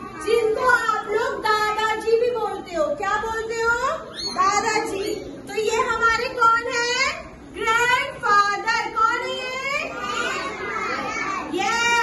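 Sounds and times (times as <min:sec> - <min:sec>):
children speaking together: 0:00.0 - 0:01.4, 0:04.0 - 0:06.2, 0:08.1 - 0:12.0.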